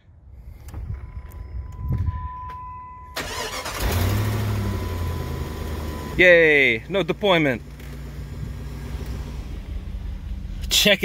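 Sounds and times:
car engine idling: 0:03.2 - 0:11.0.

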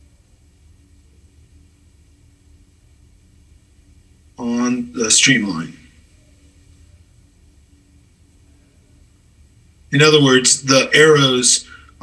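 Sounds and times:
steady low hum with hiss: 0:00.0 - 0:12.0.

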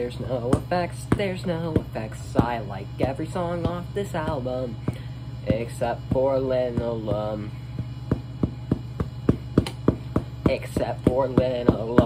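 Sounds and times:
low steady hum: 0:00.0 - 0:12.0
hand drumming on a tabletop: 0:00.3 - 0:12.0.

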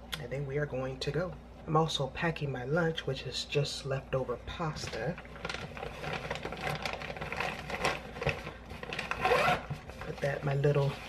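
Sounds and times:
plastic container scraping: 0:04.7 - 0:11.0
zipper being pulled: 0:08.9 - 0:09.7.

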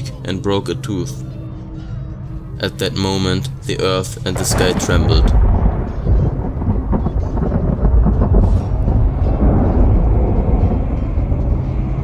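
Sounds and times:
deep thunder-like rumble: 0:04.3 - 0:12.0.

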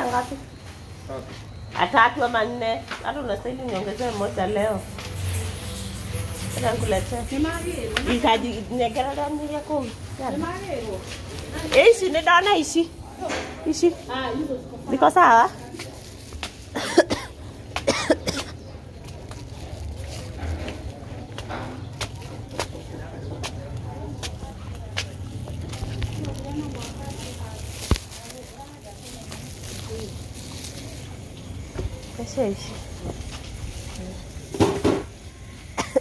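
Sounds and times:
person coughing: 0:16.8 - 0:18.5, 0:35.8 - 0:36.0.

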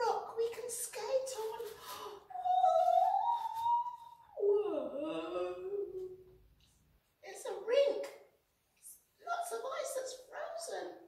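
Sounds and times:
murmured sounds: 0:01.4 - 0:06.4
woman singing long high oooh: 0:02.3 - 0:06.3.

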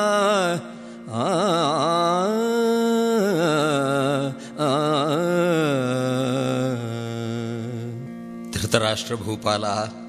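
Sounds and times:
man singing ornamented notes: 0:00.0 - 0:10.0.

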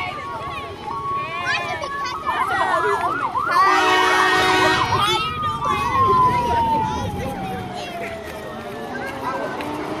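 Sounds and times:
siren yelping: 0:00.9 - 0:09.0
horn blast: 0:03.6 - 0:05.0.

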